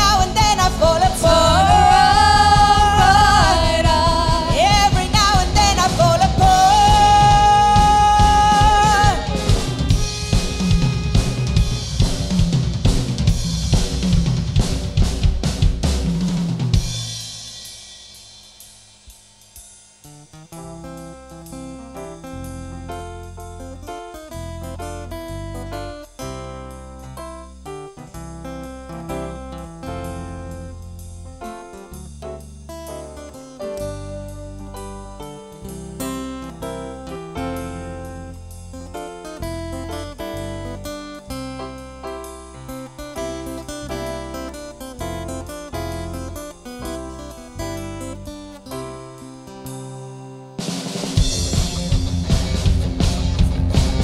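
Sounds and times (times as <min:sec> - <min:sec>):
sustained low bass notes: 0:00.0 - 0:15.8, 0:20.5 - 0:49.0, 0:51.2 - 0:54.0
strummed chords: 0:00.0 - 0:17.7, 0:19.0 - 0:54.0
drum kit playing hard: 0:00.0 - 0:54.0.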